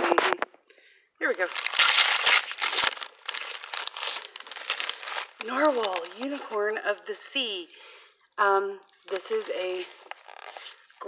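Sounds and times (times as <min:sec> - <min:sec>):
wrapping paper crinkling: 0:01.2 - 0:07.1, 0:09.0 - 0:11.0.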